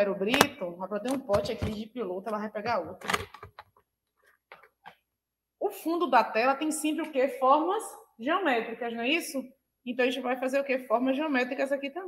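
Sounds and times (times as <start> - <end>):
woman's voice: 0.0 - 3.1, 5.6 - 12.0.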